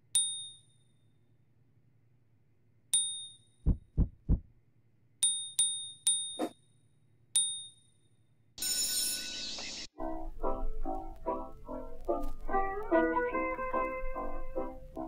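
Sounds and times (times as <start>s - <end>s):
low thuds: 3.7s - 4.5s.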